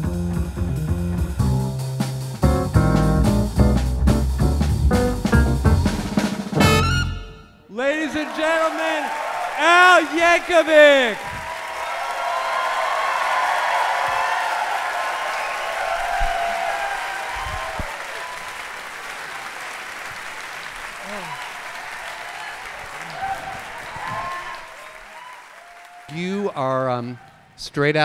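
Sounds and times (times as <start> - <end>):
audience applauding and cheering: 7.7 - 27.8.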